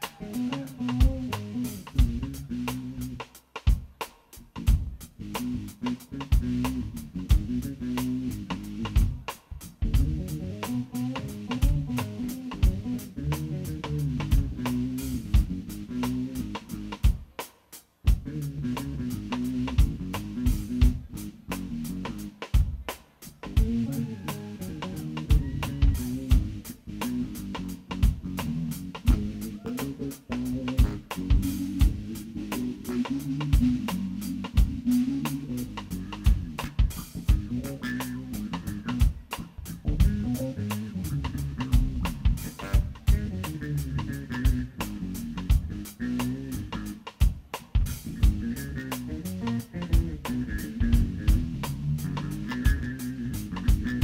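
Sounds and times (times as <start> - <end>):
electric bass guitar: 0.0 - 17.3, 18.0 - 54.0
drum kit: 0.0 - 54.0.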